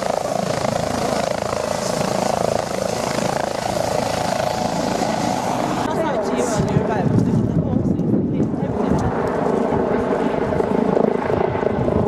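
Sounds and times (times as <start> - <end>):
helicopter flying low: 0.0 - 12.0.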